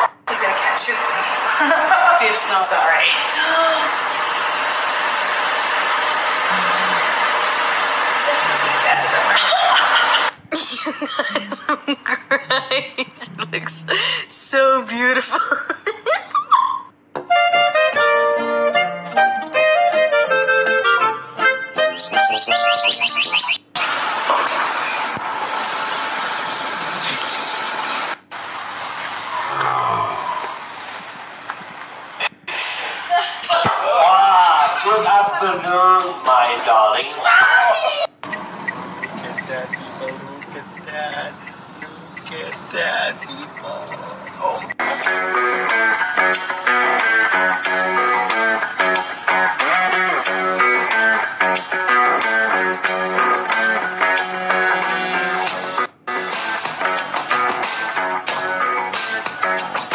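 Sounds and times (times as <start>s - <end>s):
man talking: 33.8s - 37.2s, 39.1s - 44.8s.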